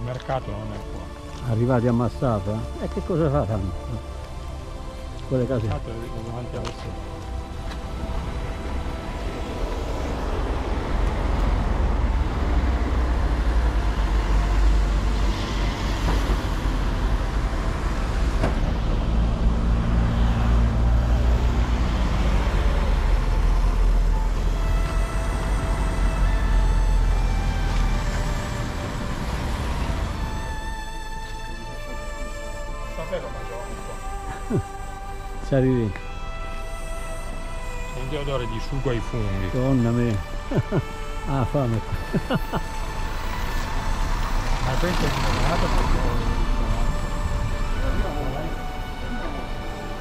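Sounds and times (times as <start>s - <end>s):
road traffic: 0.0s - 50.0s
faint music: 20.2s - 50.0s.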